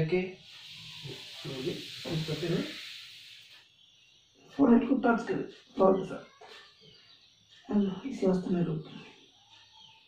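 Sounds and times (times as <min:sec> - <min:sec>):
long hissing breath out: 0:00.4 - 0:04.2.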